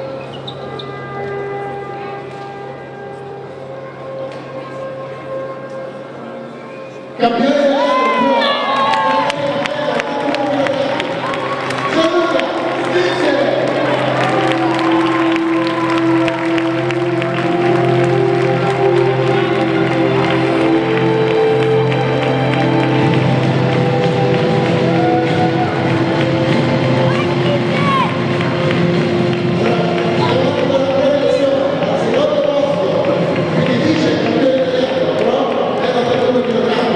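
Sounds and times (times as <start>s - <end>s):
music with long held notes: 0.0s - 36.9s
crowd cheering and applauding: 7.6s - 36.9s.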